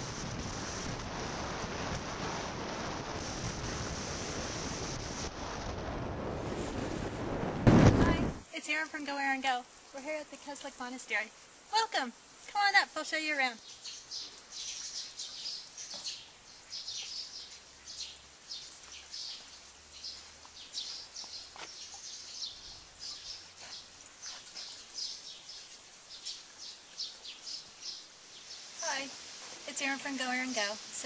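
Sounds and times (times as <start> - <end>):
faint outdoor background: 0.0 - 31.0
small birds chirping: 8.6 - 31.0.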